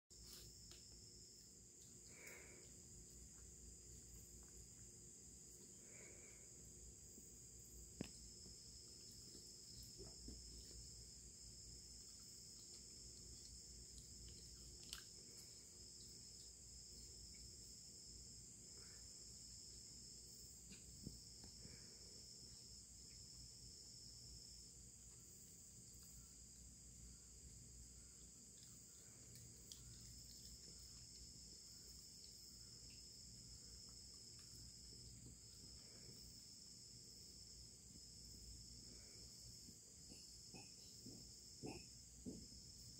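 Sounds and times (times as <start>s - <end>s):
crickets trilling: 0.2s - 42.9s.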